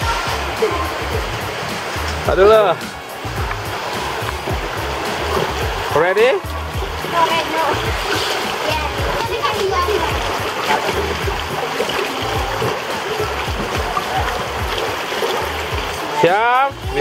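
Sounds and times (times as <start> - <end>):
children's voices: 0.0 - 1.3, 7.1 - 11.1, 15.4 - 17.0
music with bass beat: 0.0 - 17.0
rushing water: 0.0 - 17.0.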